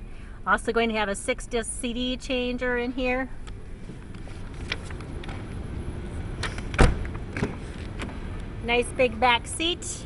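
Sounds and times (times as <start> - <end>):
clicks and rustles of movement: 3.5 - 5.6
car door shutting: 6.4 - 8.2.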